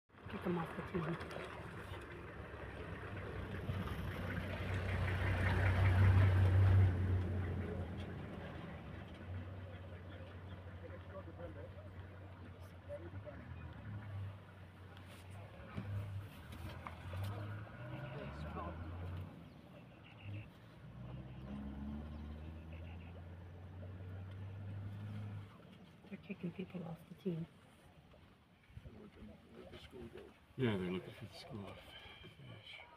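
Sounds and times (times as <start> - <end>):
motor engine humming: 0.2 - 25.7.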